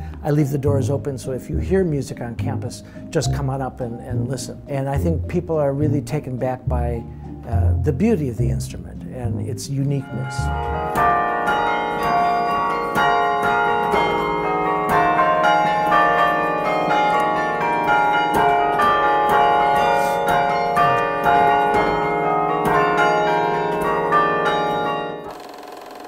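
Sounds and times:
carillon bells playing melody: 8.8 - 26.0.

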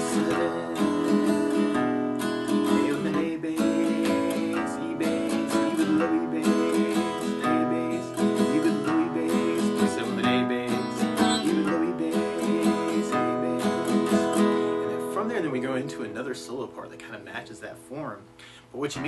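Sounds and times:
acoustic guitar country waltz: 0.0 - 19.0.

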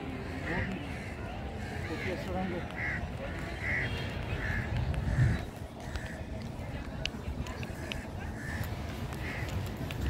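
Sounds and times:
birds calling: 0.1 - 6.4, 7.5 - 10.0.

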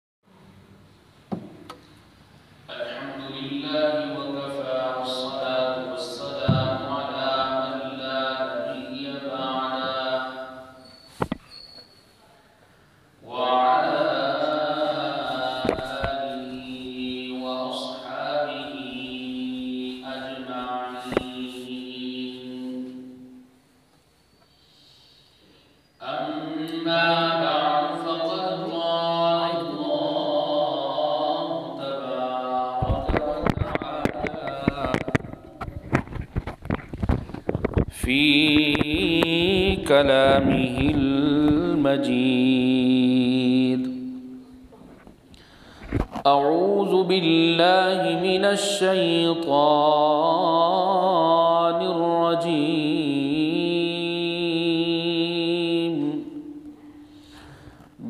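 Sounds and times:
man chanting melodically: 2.7 - 10.8, 13.2 - 23.2, 26.0 - 35.7, 37.9 - 44.4, 46.2 - 56.6.

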